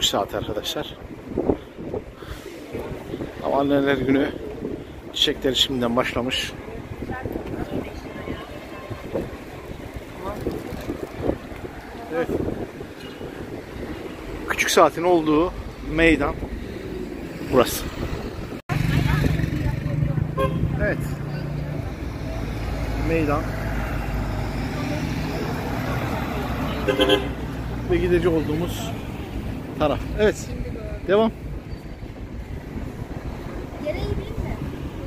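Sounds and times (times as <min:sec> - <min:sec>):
wind buffeting microphone: 0:00.0 - 0:14.7, 0:15.5 - 0:20.8, 0:28.4 - 0:35.0
traffic rumble: 0:00.0 - 0:35.0
passers-by talking faintly: 0:00.6 - 0:14.0.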